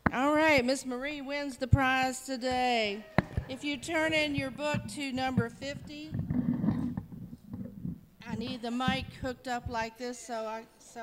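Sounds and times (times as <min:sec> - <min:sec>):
microphone handling rustling: 0:02.5 - 0:09.9.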